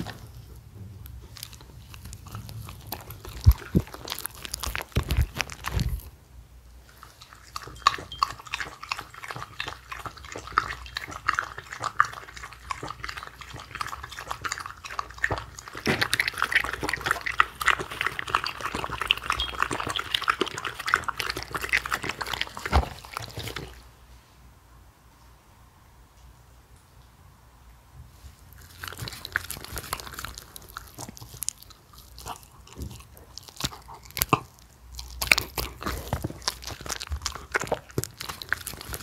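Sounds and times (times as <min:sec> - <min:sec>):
dogs chewing: 0:00.0 - 0:06.1, 0:06.8 - 0:23.9, 0:28.5 - 0:39.0
wet smacking and licking: 0:00.0 - 0:06.1, 0:06.8 - 0:23.8, 0:28.5 - 0:39.0.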